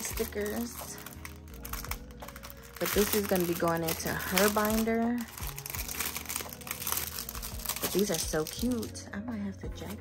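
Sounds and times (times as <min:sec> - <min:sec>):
plastic packaging crinkling: 0:00.0 - 0:09.1.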